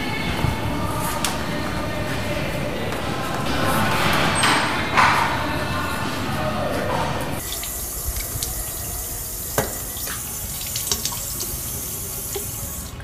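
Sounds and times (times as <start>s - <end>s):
water running from faucet into sink: 7.4s - 13.0s.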